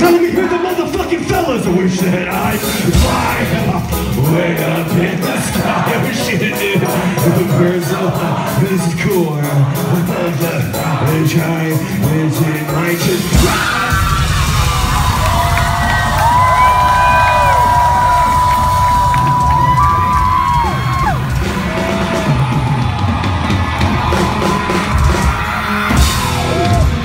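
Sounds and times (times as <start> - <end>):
rap-rock band playing live: 0.0 - 27.0
crowd yelling and whooping: 13.4 - 27.0.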